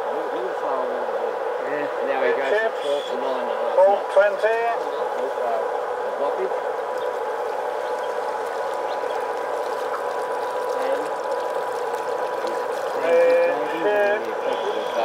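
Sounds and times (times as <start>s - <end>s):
boat motor humming and whining: 2.6s - 15.0s.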